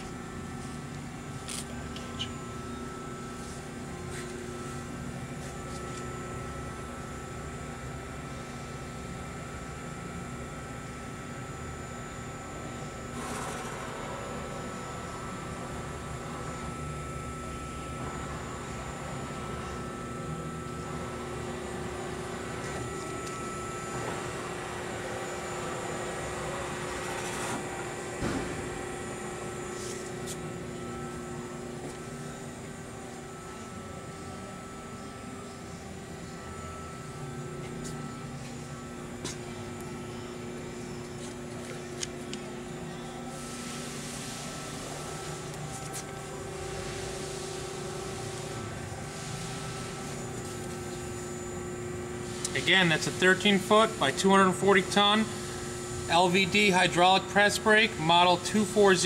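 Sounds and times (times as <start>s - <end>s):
machinery humming: 0.0s - 59.0s.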